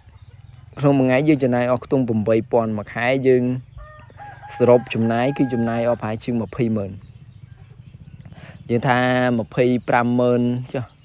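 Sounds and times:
rooster crowing: 0:03.7 - 0:06.5.

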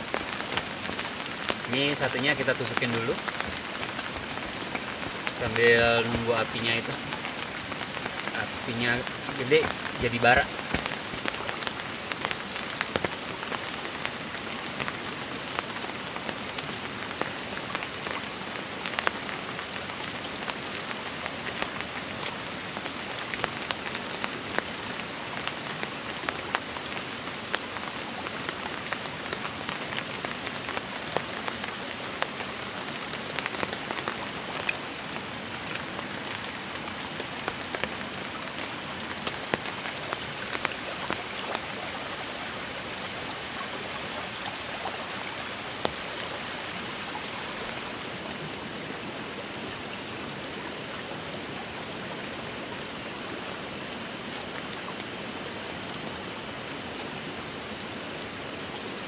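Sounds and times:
steady rain: 0:00.0 - 0:59.0.

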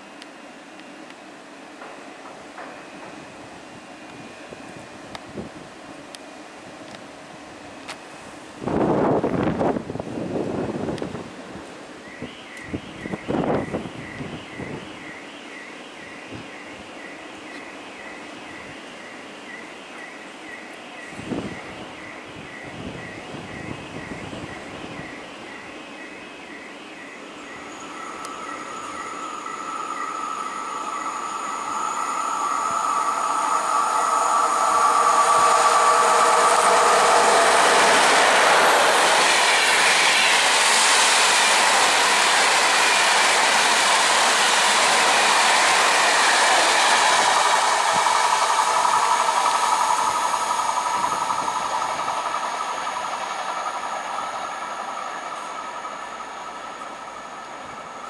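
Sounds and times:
electric locomotive passing: 0:00.0 - 0:58.0
train wheels on rails: 0:00.0 - 0:58.0
steady whining tones: 0:16.3 - 0:58.0.

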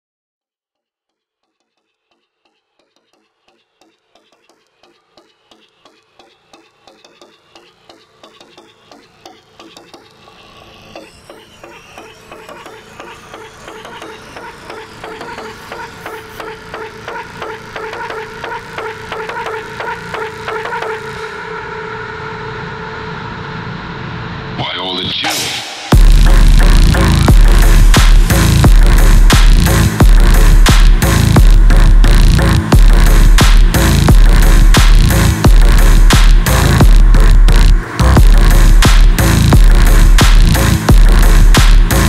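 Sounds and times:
slowed electronic music: 0:01.2 - 0:42.0.

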